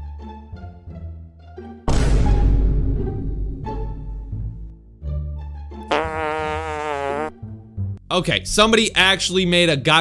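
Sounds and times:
low background music: 0:00.0 - 0:06.6.

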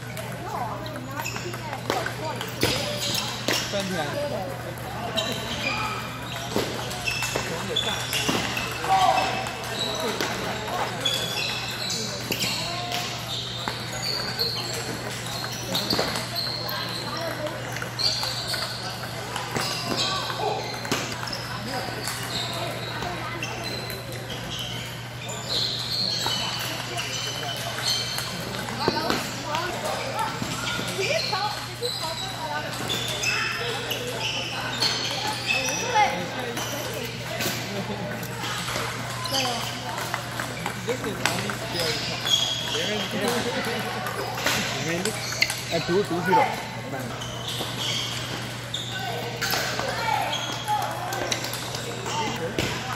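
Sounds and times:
many voices chattering: 0:00.0 - 0:52.9.

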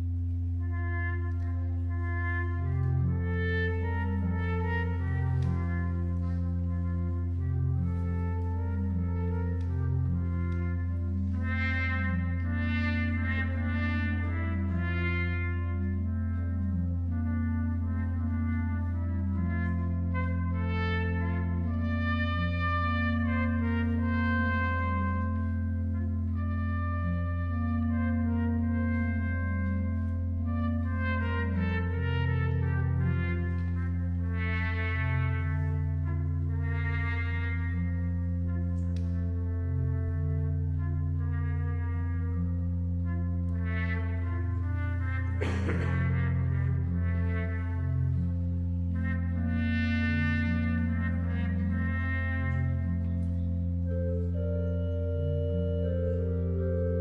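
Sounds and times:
muted cornet melody: 0:00.0 - 0:57.0
pipe organ: 0:00.0 - 0:57.0.

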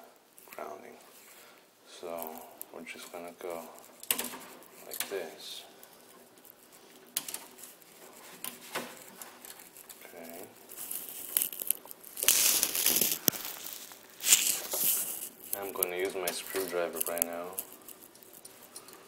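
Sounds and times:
gloves crinkling and rustling: 0:00.0 - 0:19.0
scraping rustle: 0:00.4 - 0:19.0
small clicks: 0:02.1 - 0:19.0.

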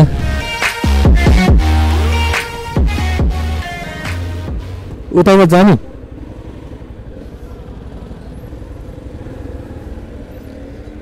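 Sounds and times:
motorcycle engine rumbling: 0:05.8 - 0:11.0.

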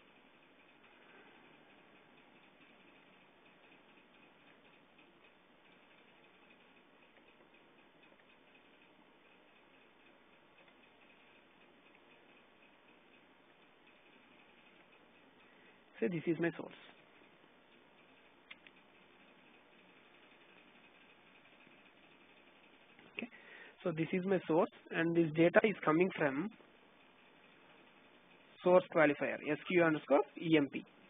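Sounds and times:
computer mouse clicks: 0:18.0 - 0:23.2.

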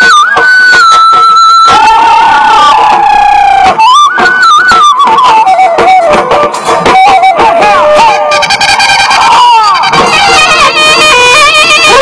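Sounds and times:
folk dance music: 0:00.0 - 0:12.0
long held high note: 0:00.0 - 0:12.0.

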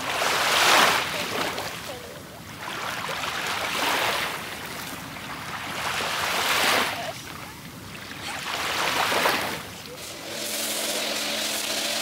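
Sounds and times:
waves washing onto pebbles: 0:00.0 - 0:02.0, 0:08.1 - 0:12.0.

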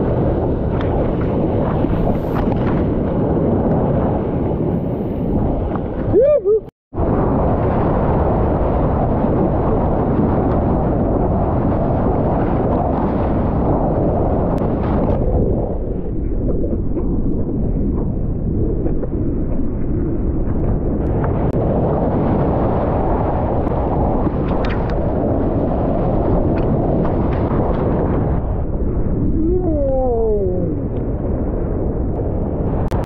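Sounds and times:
wind buffeting microphone: 0:00.0 - 0:33.0.

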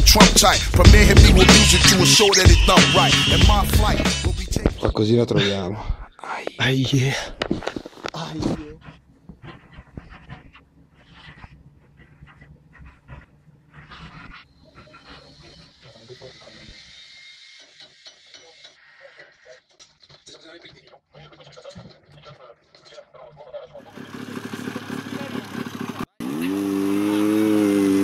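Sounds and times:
man's voice: 0:00.0 - 0:07.4.

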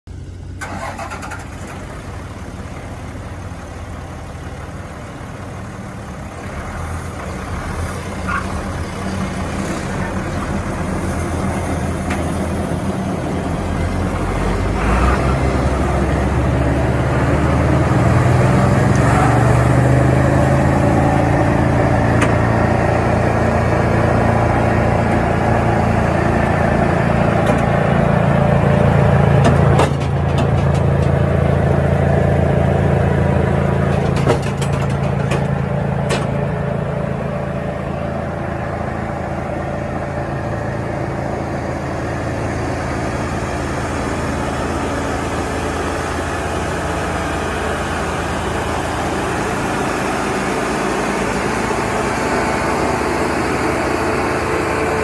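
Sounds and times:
wood chipper engine running: 0:00.1 - 0:55.0.

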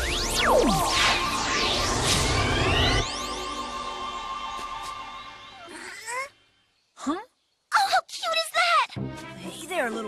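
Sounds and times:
background music: 0:00.0 - 0:06.7, 0:08.4 - 0:10.0.

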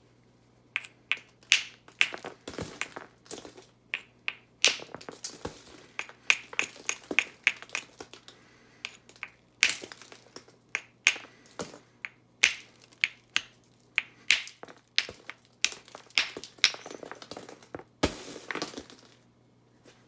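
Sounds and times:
hammerstone clicking on stone: 0:00.8 - 0:03.0, 0:10.8 - 0:11.3, 0:12.0 - 0:17.2
stone cracking with clatter: 0:08.9 - 0:11.7, 0:14.3 - 0:19.2.

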